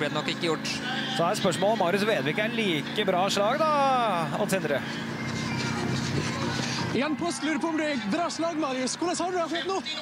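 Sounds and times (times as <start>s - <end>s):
outdoor noise: 0.0s - 10.0s.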